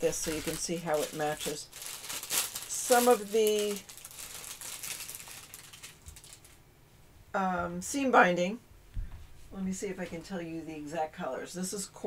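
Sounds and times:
paper rustling: 0.0s - 6.6s.

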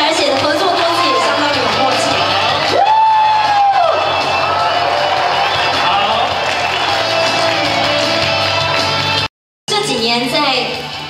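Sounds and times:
crowd noise: 0.0s - 10.2s
person whooping: 2.7s - 6.8s.

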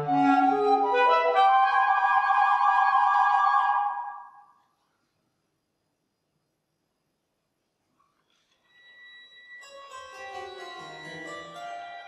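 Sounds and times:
woodwinds and strings chord: 0.0s - 4.3s.

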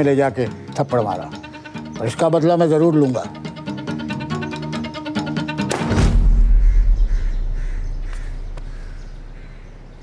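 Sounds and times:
deep low boom: 5.9s - 9.0s.

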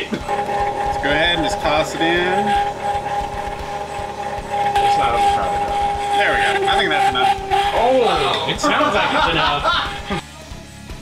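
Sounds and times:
ice cream maker motor whining: 0.0s - 10.2s.

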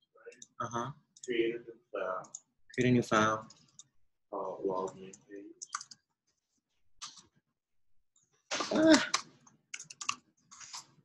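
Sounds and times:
keyboard typing clicks: 4.8s - 6.0s, 9.8s - 10.2s.

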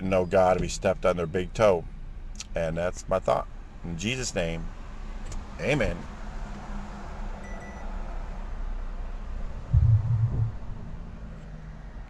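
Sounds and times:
vehicle cab hum and hiss: 0.0s - 9.6s
dull low thump: 9.7s - 11.2s.

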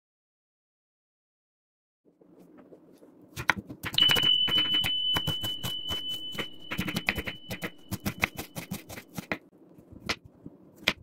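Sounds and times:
knife chopping on wooden board: 3.4s - 11.0s
steady high-pitched tone: 4.0s - 8.7s.

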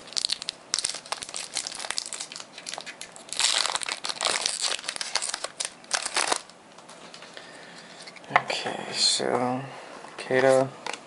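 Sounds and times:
foil wrapper crinkling: 0.0s - 6.6s.

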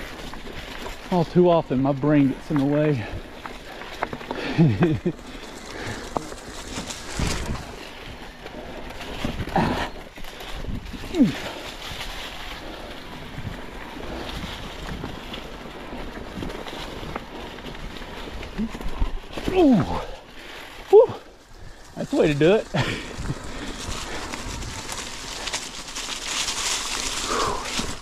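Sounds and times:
bike tyres crackling over leaves: 0.0s - 28.0s
rider grunting: 2.8s - 11.8s, 18.1s - 25.8s, 27.0s - 28.0s.

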